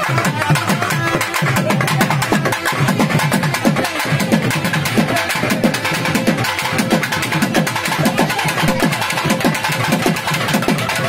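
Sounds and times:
patter of sharp drum beats: 0.0 - 11.0.

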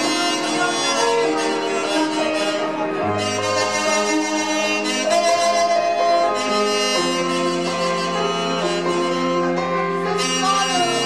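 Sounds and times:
saxophone melody: 0.0 - 11.0.

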